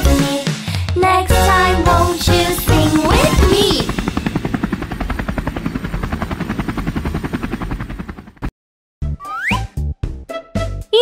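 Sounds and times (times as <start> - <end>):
cartoon helicopter rotor chop: 1.3 - 8.5.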